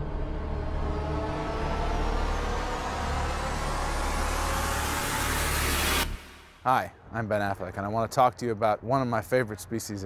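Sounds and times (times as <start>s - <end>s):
rushing noise: 0.0s - 6.7s
deep steady rumble: 0.0s - 7.2s.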